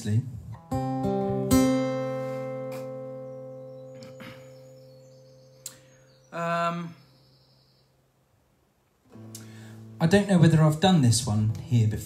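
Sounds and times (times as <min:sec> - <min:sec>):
voice: 0:00.0 - 0:00.4, 0:06.4 - 0:07.0, 0:10.0 - 0:12.0.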